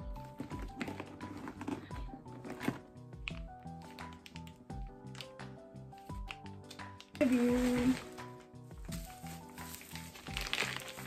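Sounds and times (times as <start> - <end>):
music with steady beat: 1.9 - 7.2, 7.8 - 10.2
plastic wrapping crinkling: 6.2 - 11.0.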